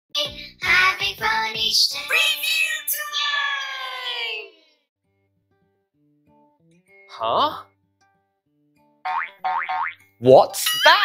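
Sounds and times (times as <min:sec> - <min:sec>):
faint background music: 0:07.1 - 0:07.8
rising cartoon boing: 0:09.1 - 0:10.0.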